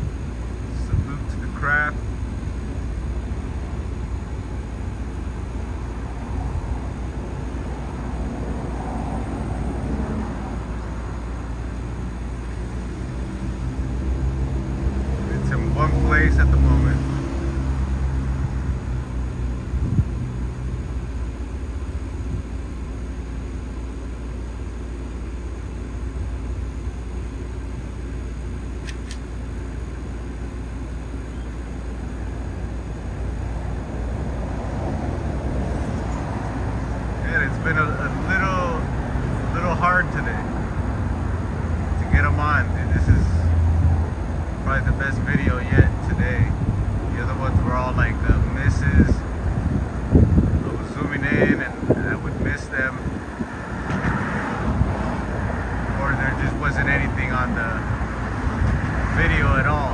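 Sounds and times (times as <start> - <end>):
deep engine hum: 0.0 - 59.9
vehicle rumble: 0.0 - 59.9.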